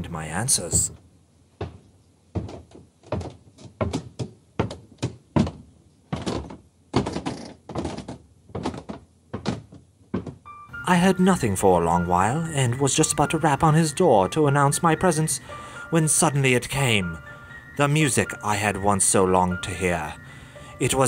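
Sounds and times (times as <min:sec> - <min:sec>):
footsteps soft thuds: 0:00.6 - 0:10.5.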